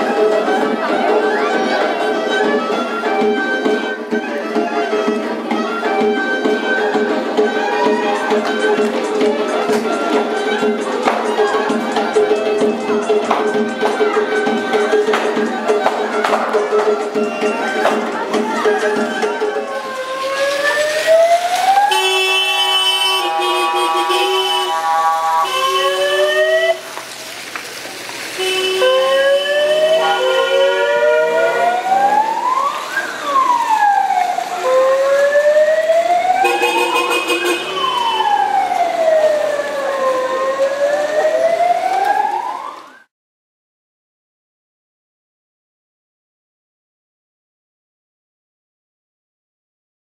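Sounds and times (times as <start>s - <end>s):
electronic siren horn wailing: 19.7s - 26.8s, 28.4s - 42.7s
car horns blaring: 21.8s - 26.9s, 28.4s - 31.9s, 36.4s - 38.4s.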